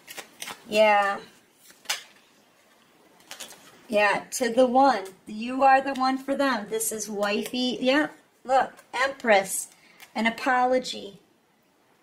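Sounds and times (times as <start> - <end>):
card snapped against deck: 1.7 - 2.2.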